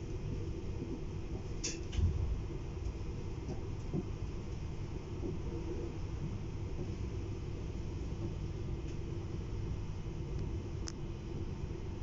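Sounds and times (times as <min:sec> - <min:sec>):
train rumble inside coach: 0:00.0 - 0:12.0.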